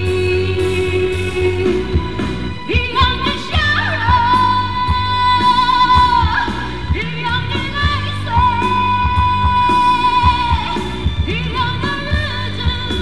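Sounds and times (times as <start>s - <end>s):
backing music with beat and bass: 0.0s - 13.0s
woman singing pop ballad: 0.0s - 13.0s.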